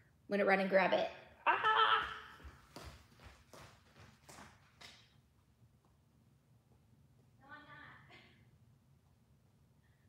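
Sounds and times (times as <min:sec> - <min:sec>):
woman exclaiming: 0:01.4 - 0:02.3
footsteps walking away: 0:02.0 - 0:06.0.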